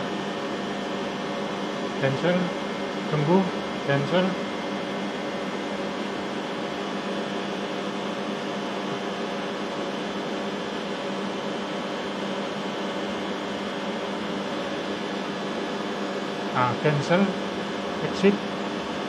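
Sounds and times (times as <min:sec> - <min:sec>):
machine hum: 0:00.0 - 0:19.0.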